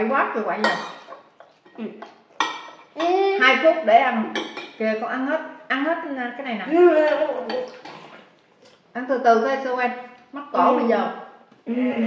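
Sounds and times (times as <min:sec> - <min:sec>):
cutlery clinking against plates: 0:00.6 - 0:03.2, 0:04.3 - 0:04.8.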